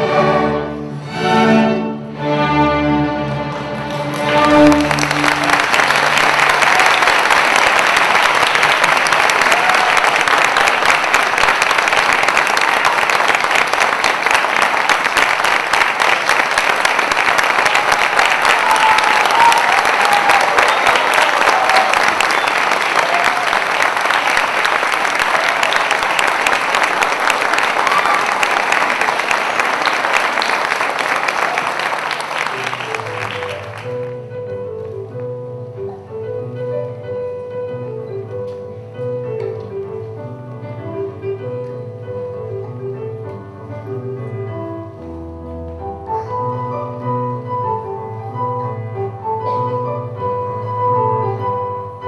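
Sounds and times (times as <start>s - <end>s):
string orchestra chord: 0.0s - 6.5s
audience applause: 3.5s - 34.2s.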